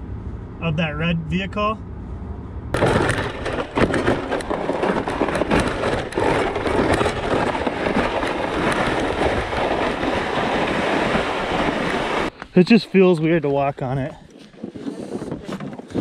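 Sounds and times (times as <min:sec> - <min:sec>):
gear knocking and rattling: 0:02.7 - 0:12.3
sled scraping over snow and ice: 0:02.8 - 0:16.0.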